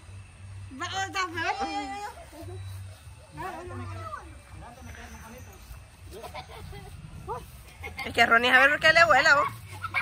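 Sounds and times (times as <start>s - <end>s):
faint voices talking: 0.4s - 10.0s.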